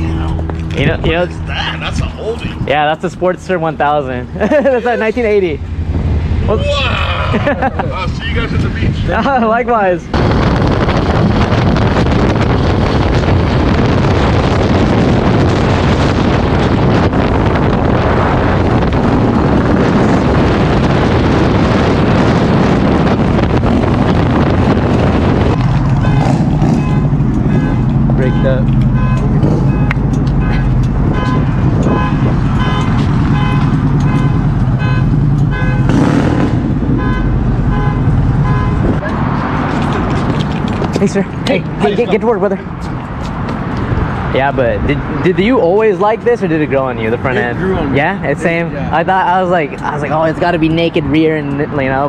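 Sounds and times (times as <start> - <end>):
wind rushing over microphone: 0.0 - 52.0
motorcycle engine: 10.2 - 42.4.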